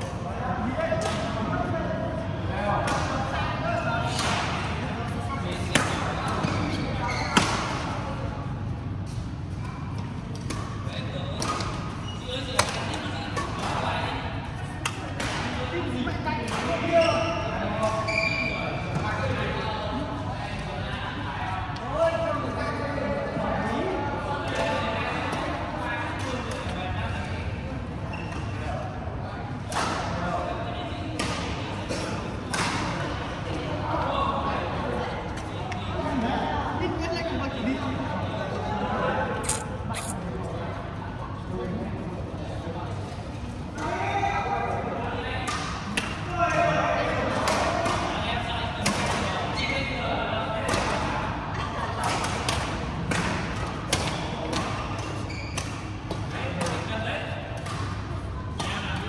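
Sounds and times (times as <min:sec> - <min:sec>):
murmur of voices: 0:00.0 - 0:59.0.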